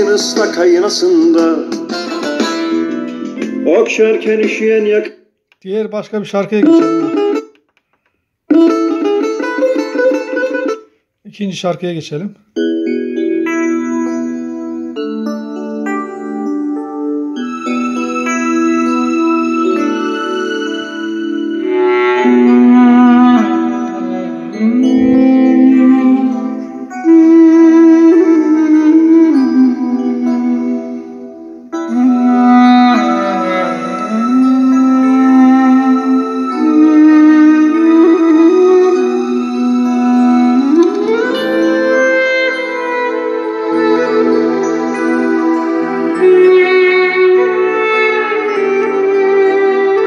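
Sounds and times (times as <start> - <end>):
music from small speakers: 0.0 - 5.1, 6.6 - 7.7, 8.5 - 11.1, 12.5 - 50.0.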